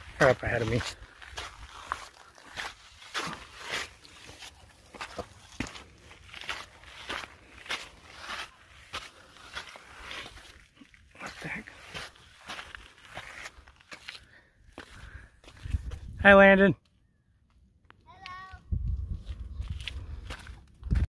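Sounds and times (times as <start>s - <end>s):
crunching footsteps on trail: 0.0s - 16.2s, 18.8s - 21.0s.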